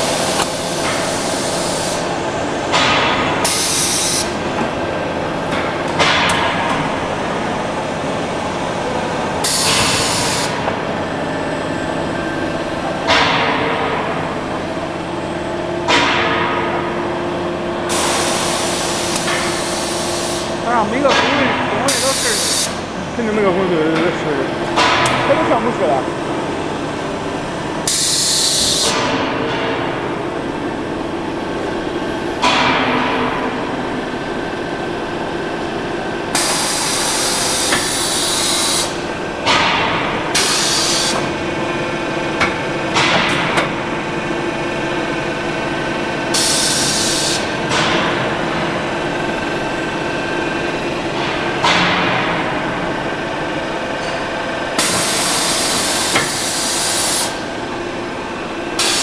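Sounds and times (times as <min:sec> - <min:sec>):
machine hum: 0:00.0 - 0:59.0
loud hissing bursts: 0:21.9 - 0:22.8.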